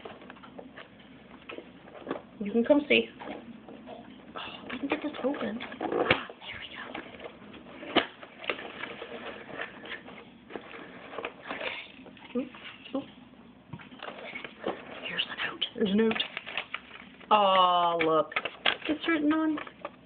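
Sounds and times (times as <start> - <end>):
packaging rustling and crinkling: 0.0 - 13.0, 13.8 - 20.0.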